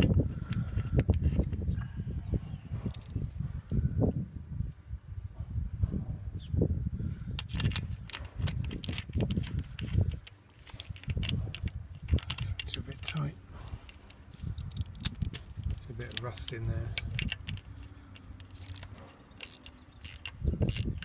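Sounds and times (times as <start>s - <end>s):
wind buffeting microphone: 0.0s - 21.0s
hand tools tapping metal fitting: 7.4s - 21.0s.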